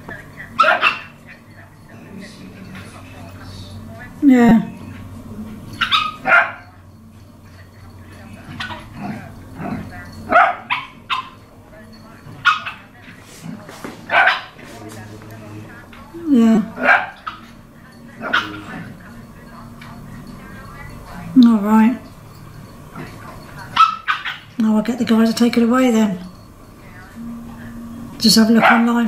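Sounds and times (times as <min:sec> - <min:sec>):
small dogs barking: 0:00.0 - 0:04.2, 0:04.8 - 0:24.6, 0:25.3 - 0:29.0
low steady hum: 0:00.0 - 0:29.0
small dog barking: 0:00.5 - 0:01.5, 0:05.8 - 0:06.8, 0:08.5 - 0:11.5, 0:12.4 - 0:13.0, 0:14.0 - 0:14.6, 0:16.7 - 0:19.0, 0:23.0 - 0:24.6, 0:28.6 - 0:29.0.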